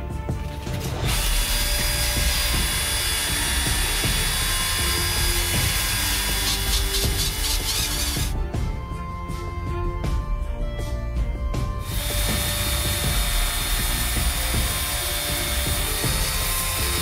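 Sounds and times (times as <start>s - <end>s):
background music: 0.0s - 17.0s
cordless drill whirring: 1.0s - 8.4s, 11.8s - 17.0s
sandpaper rasping on metal ring: 6.3s - 8.3s.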